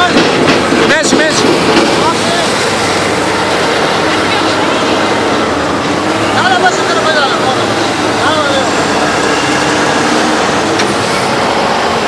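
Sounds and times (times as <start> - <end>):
heavy diesel machinery running: 0.0 - 12.0.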